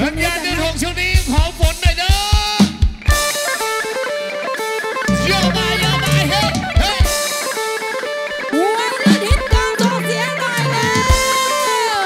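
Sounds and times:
drum kit fill: 1.0s - 8.2s, 9.0s - 12.0s
sustained guitar chords: 3.1s - 11.7s.

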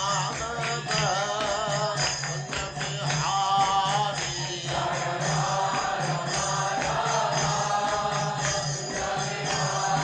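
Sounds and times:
chanted singing: 0.0s - 10.0s
light percussion: 0.0s - 10.0s.

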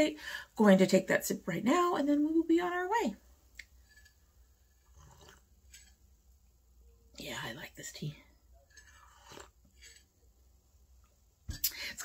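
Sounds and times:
tea sipping: 3.6s - 6.0s, 8.6s - 10.2s.

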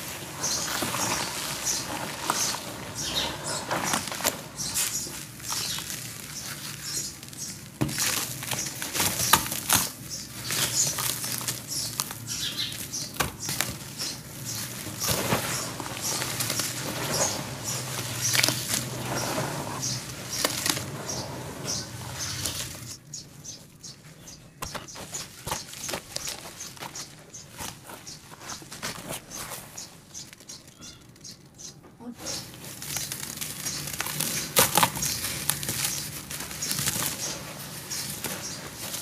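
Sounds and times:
wet squishing and crackling: 0.0s - 23.0s, 32.4s - 39.0s.

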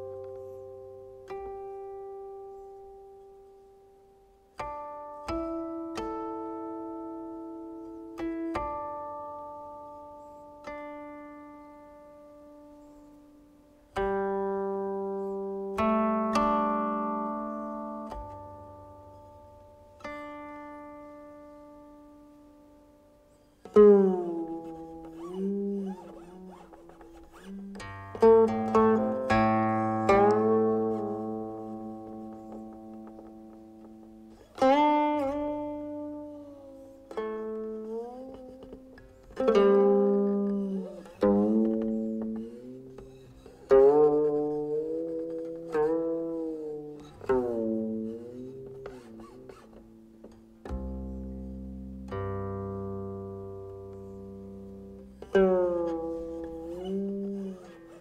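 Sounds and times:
plucked zither notes sliding: 4.6s - 22.6s, 23.3s - 58.0s.

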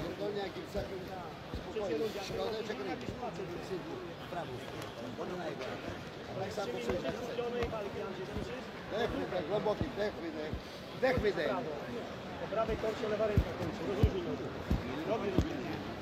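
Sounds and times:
arena noise: 0.0s - 16.0s
men talking: 0.0s - 16.0s
dull low thumps: 12.7s - 15.6s.

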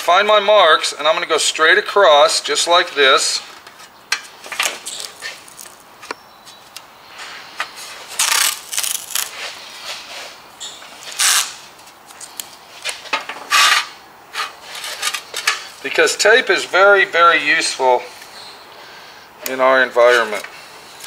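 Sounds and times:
masking tape peeling off roll: 8.1s - 9.5s, 11.0s - 13.9s.

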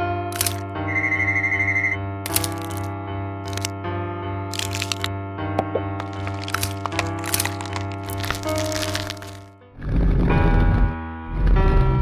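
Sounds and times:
background music: 0.0s - 10.0s
plastic parts snapping together: 0.3s - 0.6s, 2.3s - 2.9s, 3.5s - 3.7s, 4.5s - 9.4s.

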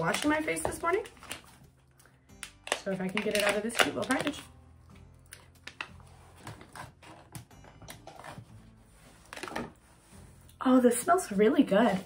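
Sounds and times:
plastic packaging clicks and taps: 0.0s - 4.4s, 5.3s - 8.1s.

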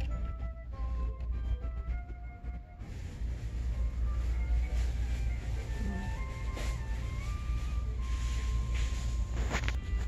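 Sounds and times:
faint shop background music: 0.0s - 10.0s
low steady rumble: 0.0s - 10.0s.

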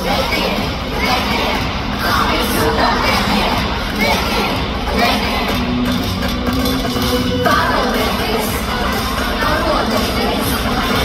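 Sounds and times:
crowd screaming and cheering: 0.0s - 11.0s
loud dance music: 0.0s - 11.0s.

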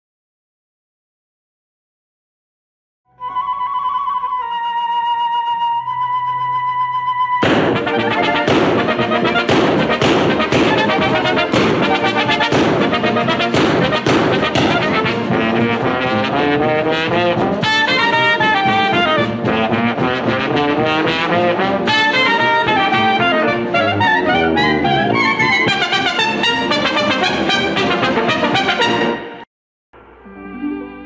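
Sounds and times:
brass band theme tune: 5.9s - 29.5s, 30.1s - 31.0s.

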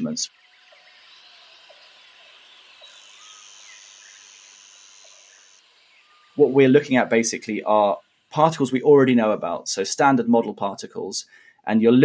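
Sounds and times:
bird chirps: 0.0s - 6.7s
high-pitched insect buzz: 0.0s - 8.6s
hiss of insects: 0.5s - 6.4s.

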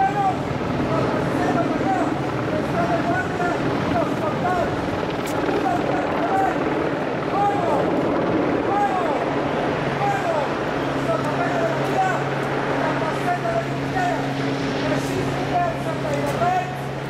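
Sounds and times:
steady mechanical drone: 0.0s - 17.0s.

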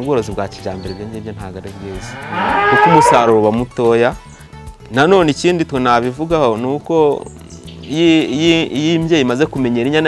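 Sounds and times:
cow mooing: 1.8s - 3.4s.

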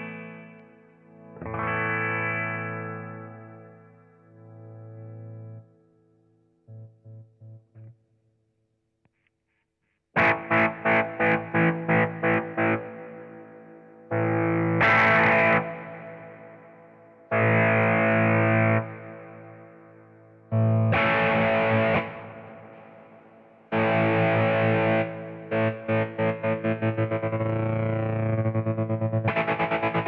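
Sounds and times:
tremolo electric guitar chords: 0.0s - 5.8s, 10.2s - 30.0s.

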